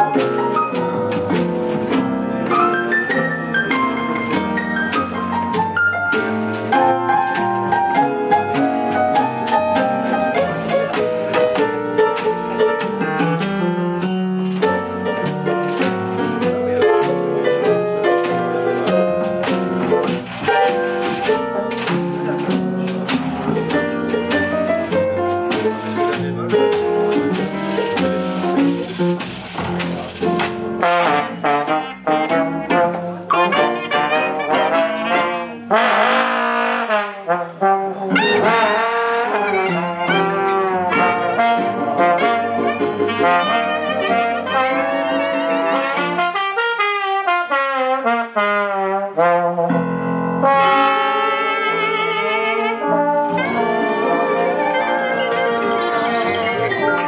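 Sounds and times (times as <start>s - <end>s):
double bass: 0.0s - 57.0s
piano: 0.0s - 57.0s
trombones: 6.1s - 57.0s.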